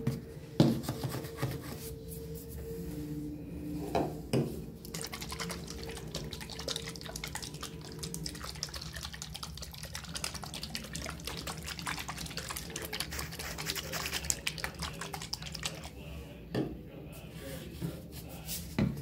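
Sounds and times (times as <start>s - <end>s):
faint low hum: 0.0s - 19.0s
faucet water trickling into basin: 4.8s - 16.0s.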